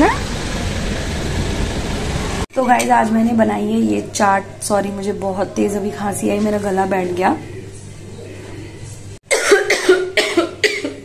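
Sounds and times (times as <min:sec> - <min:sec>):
woman coughing hoarsely: 0:09.3 - 0:11.0.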